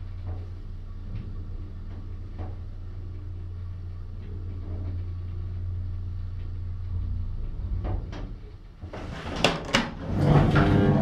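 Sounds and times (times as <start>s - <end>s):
elevator hum and rumble: 0.0s - 11.0s.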